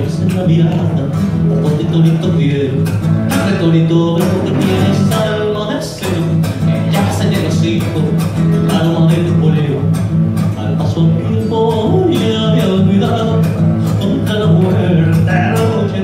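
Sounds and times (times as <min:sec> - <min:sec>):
plucked strings: 0:00.0 - 0:16.0
steady percussion beat: 0:04.2 - 0:08.5.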